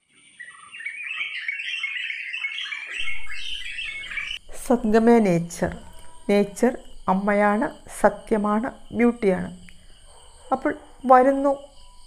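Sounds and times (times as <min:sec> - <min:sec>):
birds chirping: 0:00.2 - 0:12.0
thin steady high tone: 0:02.9 - 0:12.0.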